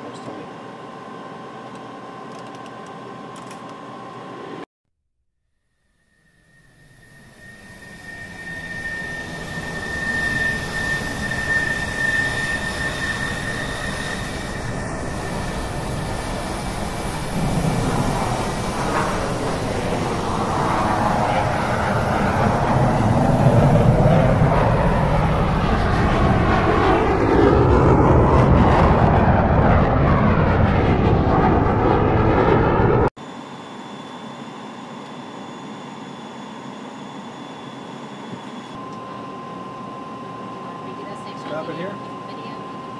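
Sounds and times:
jet engine whine: 0:00.0 - 0:04.7, 0:05.7 - 0:42.9.

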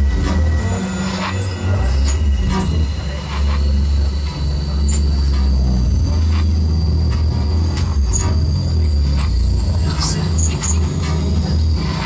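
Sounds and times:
loud low drone: 0:00.0 - 0:12.0.

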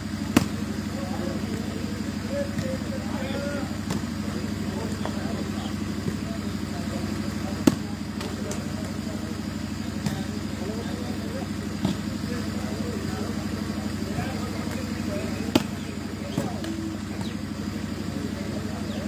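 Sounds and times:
low engine-like hum: 0:00.0 - 0:19.0
volleyball being struck hard: 0:00.2 - 0:00.8, 0:03.7 - 0:04.4, 0:07.6 - 0:09.0, 0:09.9 - 0:10.5, 0:11.8 - 0:12.2, 0:15.4 - 0:17.4.

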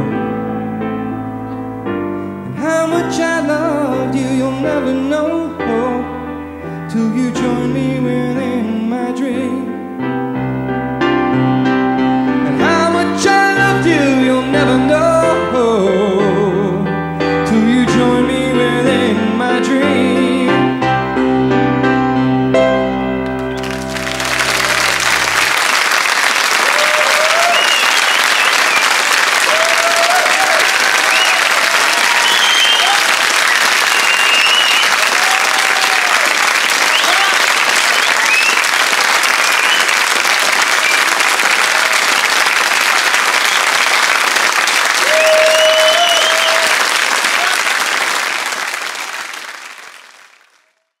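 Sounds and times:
piano chord ringing: 0:17.5 - 0:25.5
audience applause: 0:23.3 - 0:50.8
cheers and whoops: 0:26.5 - 0:38.8, 0:44.8 - 0:47.8.

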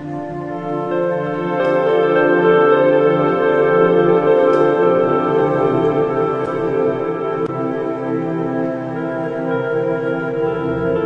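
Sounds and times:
slow sustained background music: 0:00.0 - 0:11.0.

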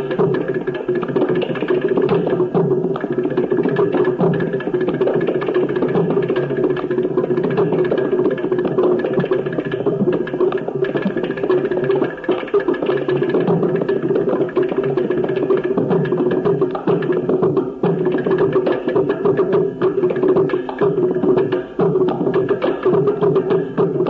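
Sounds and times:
rapid drum strokes: 0:00.0 - 0:24.0.

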